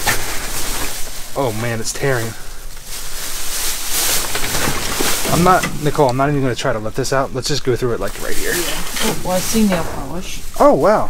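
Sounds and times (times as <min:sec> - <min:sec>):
plastic bag tearing: 0:00.0 - 0:06.3, 0:08.0 - 0:11.0
plastic bag crinkling: 0:00.0 - 0:11.0.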